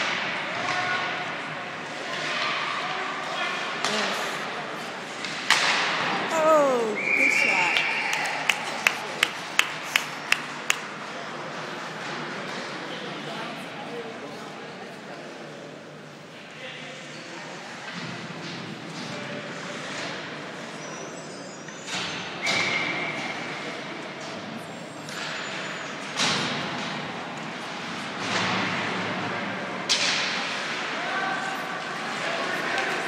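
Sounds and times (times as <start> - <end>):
spectators' voices hubbub: 0.3 - 21.8, 29.0 - 33.0
hockey sticks and puck cracks: 5.1 - 6.2, 7.7 - 12.6, 29.8 - 31.0.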